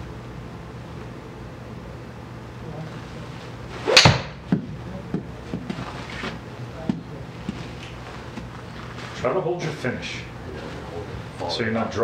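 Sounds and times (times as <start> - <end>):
golf club swish: 3.7 - 4.4
golf club striking ball: 3.8 - 4.5.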